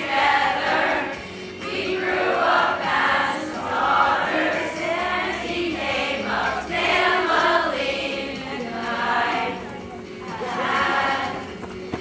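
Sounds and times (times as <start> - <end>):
choir of female voices singing: 0.0 - 11.7.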